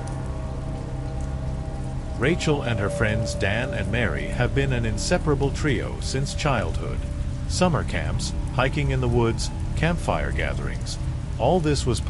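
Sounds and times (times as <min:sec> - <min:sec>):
faint low drone: 0:00.0 - 0:12.0
steady rain falling: 0:00.0 - 0:12.0.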